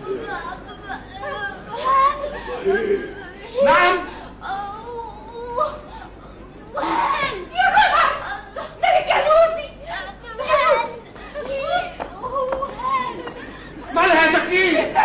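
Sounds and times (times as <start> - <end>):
women's wavering cries: 0.0 - 14.1
women laughing: 0.0 - 15.0.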